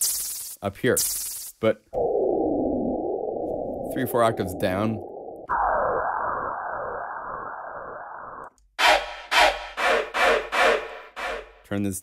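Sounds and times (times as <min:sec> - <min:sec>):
muffled swirling synth noise: 0:01.9 - 0:11.4.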